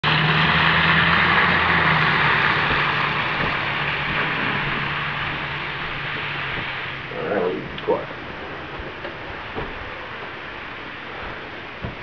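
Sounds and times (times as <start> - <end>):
tyres hissing on wet road: 0.0 - 12.0
vehicle engine hum: 0.0 - 12.0.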